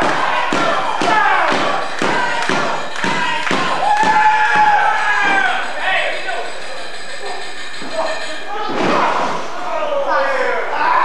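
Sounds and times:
voices shouting in a hall: 0.0s - 11.0s.

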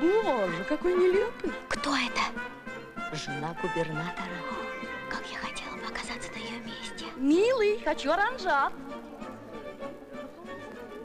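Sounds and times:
soft music with violins: 0.0s - 11.0s.

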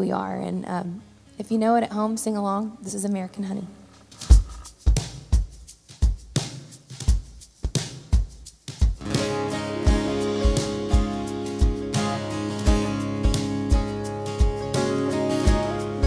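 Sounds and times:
kick drum beat: 4.2s - 9.3s, 9.9s - 14.8s
live country band: 9.0s - 16.0s
strummed acoustic guitar: 9.0s - 16.0s.

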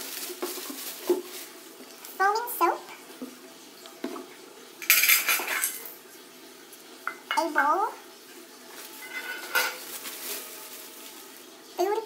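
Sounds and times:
metal bowl clinking: 4.8s - 5.9s, 8.9s - 10.5s.

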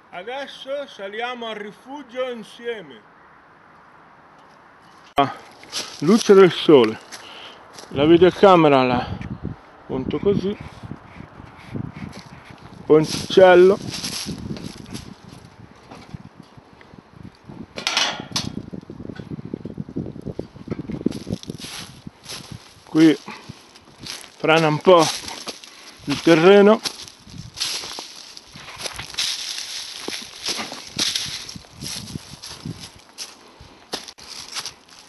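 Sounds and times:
footsteps on metal grating: 4.9s - 7.9s, 12.0s - 16.5s, 20.4s - 35.0s.

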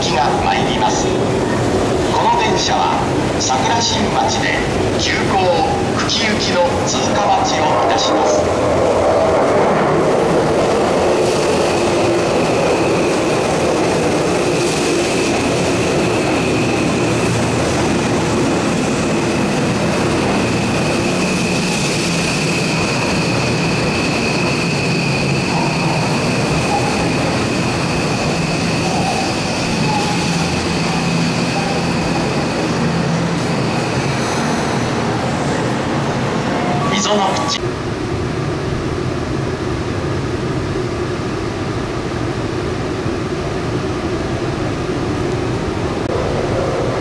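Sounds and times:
subway train braking to a stop: 0.0s - 47.0s.

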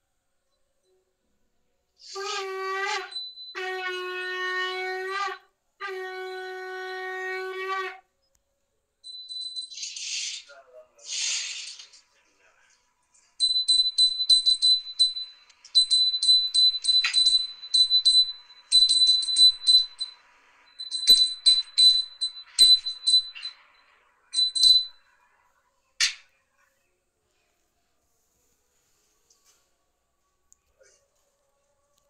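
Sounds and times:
hand bell ringing: 13.4s - 23.7s, 24.3s - 25.0s.

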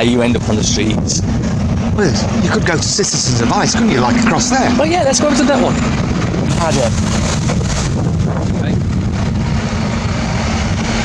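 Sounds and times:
bus running close by: 0.0s - 11.0s
city street traffic: 0.0s - 11.0s
wind rumbling on microphone: 0.0s - 11.0s.

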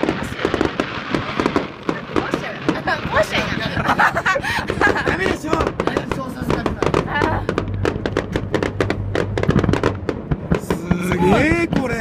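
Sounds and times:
fireworks popping and crackling: 0.0s - 12.0s
people's voices: 1.8s - 7.6s, 10.5s - 12.0s.

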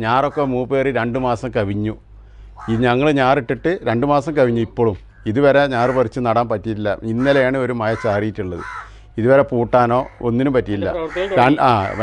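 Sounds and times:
man speaking: 0.0s - 2.0s, 2.6s - 8.6s, 9.2s - 12.0s
crow cawing: 2.5s - 3.1s, 5.1s - 6.2s, 7.1s - 9.1s, 10.0s - 12.0s.

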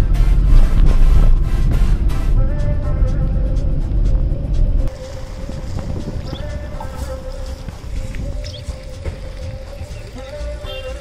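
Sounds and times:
background music: 0.0s - 11.0s
car road noise rumble: 0.0s - 11.0s.

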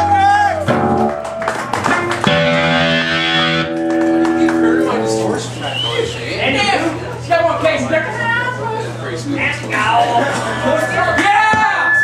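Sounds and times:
electric guitar ringing chords: 0.6s - 5.7s, 10.0s - 12.0s.

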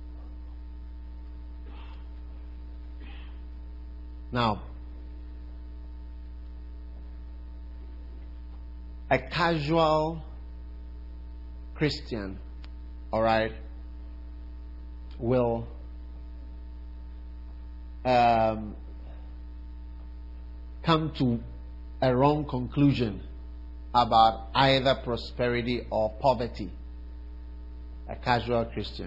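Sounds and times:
electrical mains hum: 0.0s - 29.0s
man speaking: 4.3s - 4.8s, 9.1s - 10.4s, 11.8s - 12.4s, 13.2s - 13.7s, 15.2s - 15.8s, 18.1s - 18.8s, 20.8s - 23.3s, 24.0s - 26.7s, 28.1s - 29.0s.

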